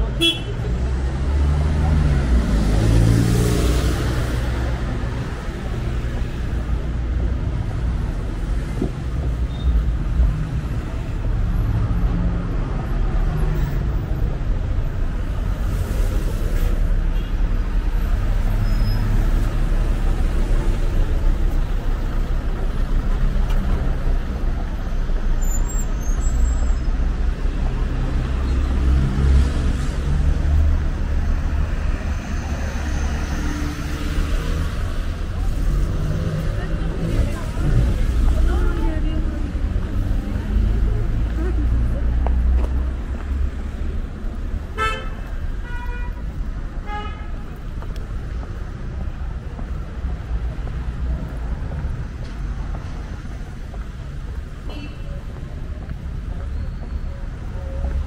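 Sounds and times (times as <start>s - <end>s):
passers-by talking: 0.0s - 58.0s
vehicles passing: 0.0s - 58.0s
car horn toot: 0.2s - 0.5s.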